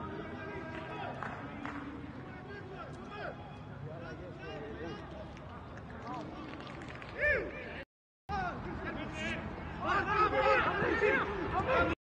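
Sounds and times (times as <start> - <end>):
players shouting: 8.3 - 12.0.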